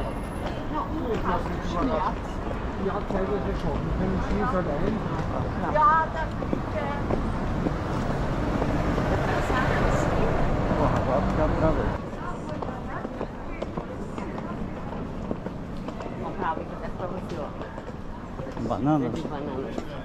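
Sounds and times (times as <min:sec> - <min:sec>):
vehicle engine rumble: 0:00.0 - 0:13.0
voices of passers-by: 0:00.0 - 0:20.0.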